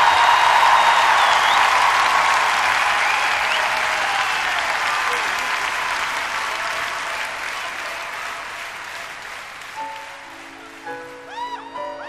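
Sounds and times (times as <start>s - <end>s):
audience applause: 0.0s - 12.0s.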